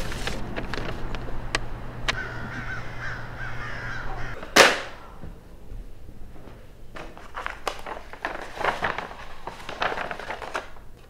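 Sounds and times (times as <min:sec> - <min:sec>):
birds calling: 0:01.0 - 0:05.3.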